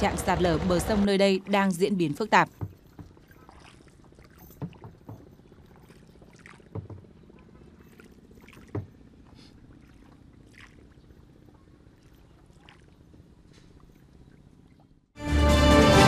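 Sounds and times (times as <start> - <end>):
dull knocks: 2.5 - 3.3, 4.5 - 5.4, 6.7 - 7.1, 8.6 - 9.0.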